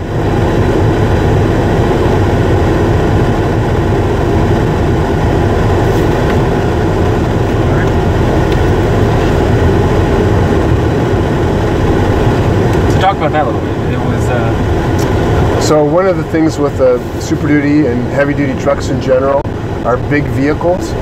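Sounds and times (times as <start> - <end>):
diesel truck cab noise: 0.0 - 21.0.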